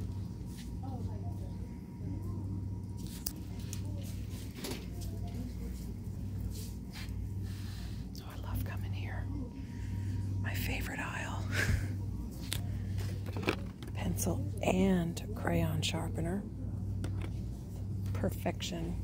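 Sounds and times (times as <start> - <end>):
low hum: 0.0 - 19.0
soft indistinct speech: 0.2 - 19.0.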